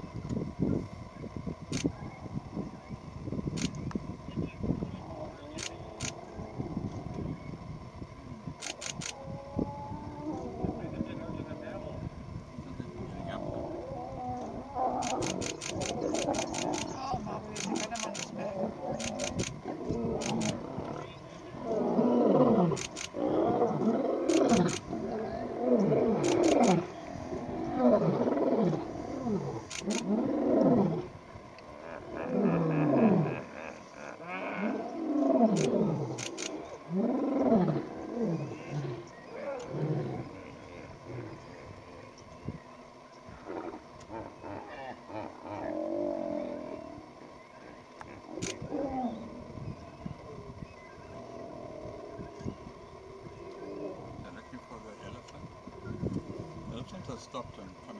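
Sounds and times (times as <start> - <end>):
sharp clicks: 3.5 - 4.0, 8.6 - 9.2, 14.4 - 18.4, 19.0 - 19.6, 20.2 - 20.6, 22.7 - 23.2, 24.3 - 24.8, 26.2 - 26.8, 29.7 - 30.1, 48.0 - 48.6
lion roaring: 12.8 - 42.2, 43.3 - 55.0.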